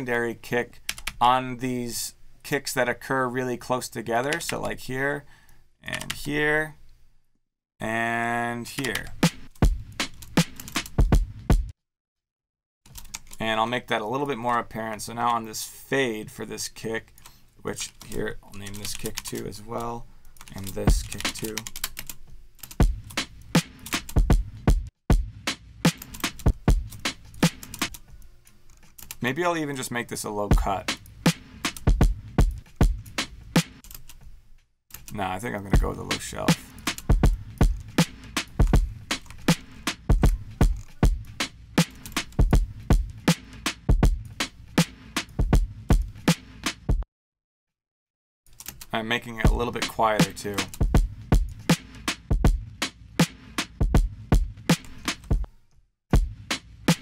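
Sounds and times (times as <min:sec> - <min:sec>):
drum loop: 0:08.8 - 0:11.7, 0:20.6 - 0:21.7, 0:22.7 - 0:27.9, 0:30.5 - 0:33.8, 0:35.6 - 0:47.0, 0:49.3 - 0:55.5, 0:56.1 - 0:57.0.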